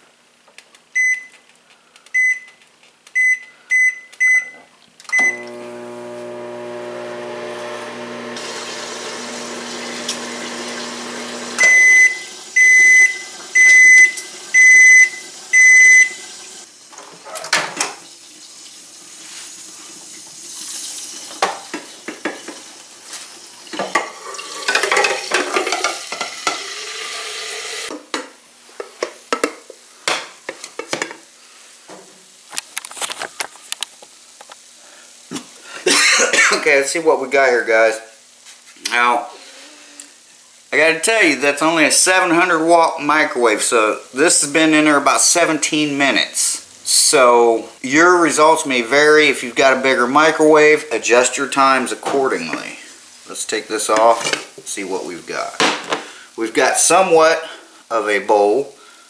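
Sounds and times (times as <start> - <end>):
long microwave beeps: 1.0 - 1.4, 2.2 - 2.6, 3.2 - 5.6, 11.6 - 16.2
microwave keypad beeps: 1.0 - 1.4, 2.2 - 2.6, 3.2 - 5.4, 11.6 - 16.2
microwave humming: 5.1 - 16.6.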